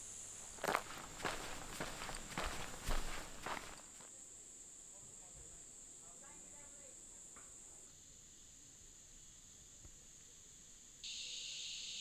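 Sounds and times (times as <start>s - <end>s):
footsteps on gravel: 0.4s - 4.1s.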